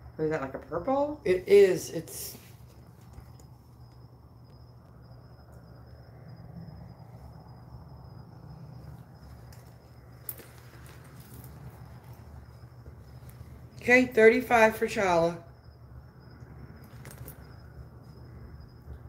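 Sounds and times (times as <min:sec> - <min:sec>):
high-pitched insect trill: 0:00.0 - 0:19.0
low room hum: 0:00.0 - 0:19.0.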